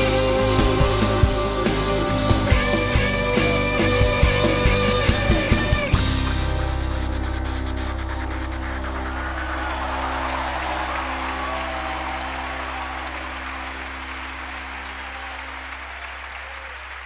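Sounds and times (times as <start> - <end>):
crowd applauding and cheering: 0.0 - 6.6, 7.6 - 17.0.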